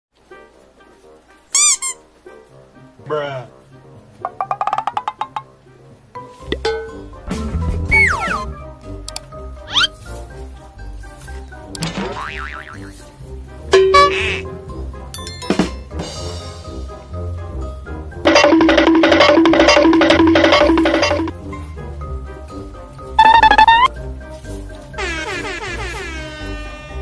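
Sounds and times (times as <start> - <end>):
quiet background music: 0.2 - 27.0
high-pitched comic squeak: 1.5 - 2.1, 7.9 - 8.6, 9.7 - 10.0, 13.8 - 14.5, 23.2 - 23.9, 25.0 - 27.0
cartoon boing wobble: 7.9 - 8.5, 11.8 - 12.9, 13.8 - 14.4, 23.2 - 23.9.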